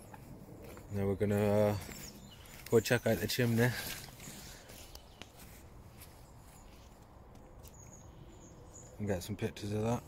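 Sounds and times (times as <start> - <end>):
footsteps on muddy leafy path: 0.0 - 7.9.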